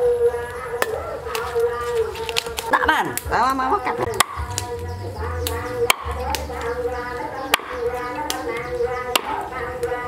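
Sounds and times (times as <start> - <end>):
cleaver chopping on wooden block: 4.1 - 4.7, 5.8 - 6.7, 7.5 - 8.4, 9.2 - 9.4.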